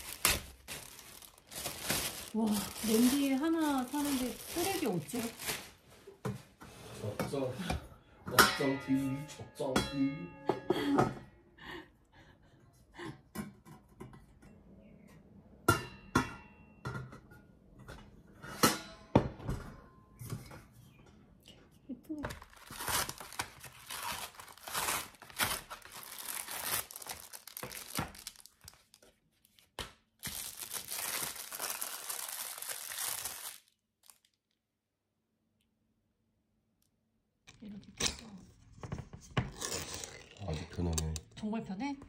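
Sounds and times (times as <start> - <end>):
paper envelope tearing and crinkling: 0.0 - 5.8, 22.4 - 29.0, 30.2 - 34.4.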